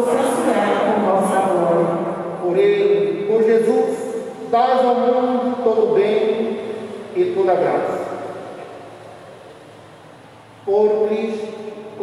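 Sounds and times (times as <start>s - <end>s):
man's voice reverberating: 0.0s - 8.5s, 10.6s - 12.0s
faint low hum with hiss: 0.0s - 12.0s.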